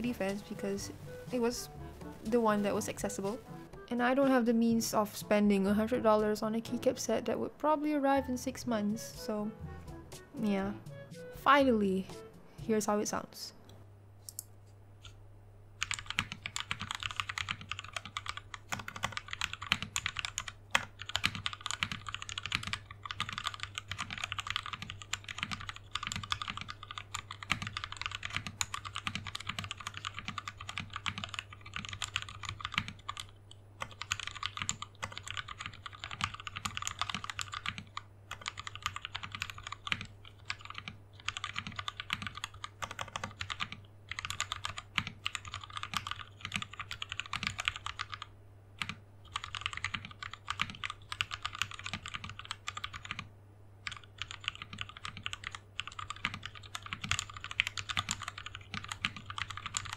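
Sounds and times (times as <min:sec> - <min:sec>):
fast mechanical keyboard typing: 0:15.8 - 0:59.9.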